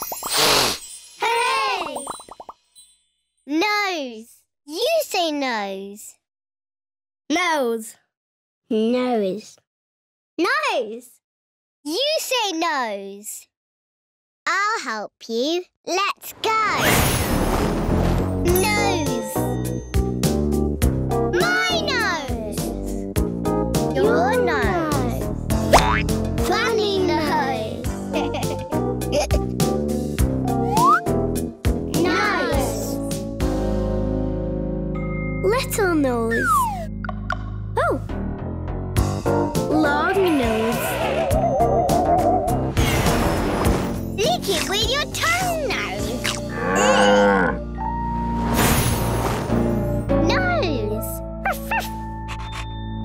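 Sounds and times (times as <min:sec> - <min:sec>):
children's background music: 0:01.0 - 0:02.9, 0:18.4 - 0:38.2, 0:39.0 - 0:48.3, 0:49.5 - 0:52.3
cartoon boing sound effect: 0:25.7 - 0:26.1
cartoon voice-like sound effect: 0:36.3 - 0:36.9, 0:39.7 - 0:42.4.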